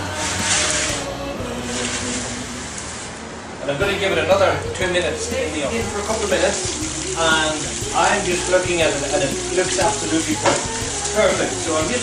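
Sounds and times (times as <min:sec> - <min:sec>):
pizza peel scraping oven floor: 0:00.0 - 0:01.1
background music: 0:00.0 - 0:12.0.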